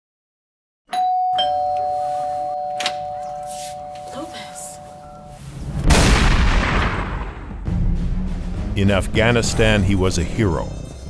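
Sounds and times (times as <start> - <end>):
two-note ding-dong chime: 0.9 - 5.4.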